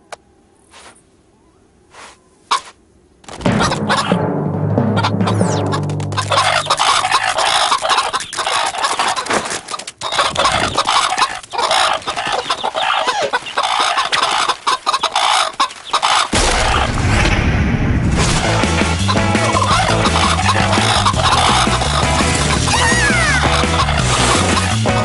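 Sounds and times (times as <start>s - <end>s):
fowl clucking and squawking: 2.0s - 4.2s, 4.8s - 16.9s, 19.0s - 25.0s
music: 3.5s - 7.6s, 18.3s - 25.0s.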